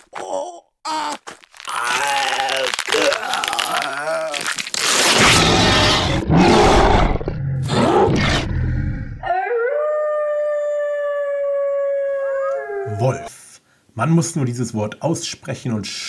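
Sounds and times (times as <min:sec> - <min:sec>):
rough growling: 0:02.9 - 0:09.2
wolf howl: 0:09.2 - 0:13.3.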